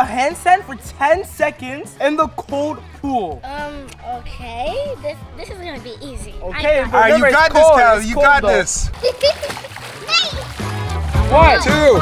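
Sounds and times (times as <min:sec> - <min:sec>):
background music: 0:00.0 - 0:12.0
pool water splashing: 0:06.6 - 0:12.0
child laughing: 0:08.9 - 0:10.5.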